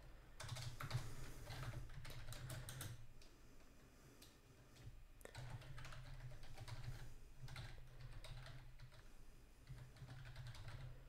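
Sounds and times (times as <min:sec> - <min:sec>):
computer keyboard keystrokes: 0:00.4 - 0:03.0, 0:04.8 - 0:09.0, 0:09.6 - 0:10.9.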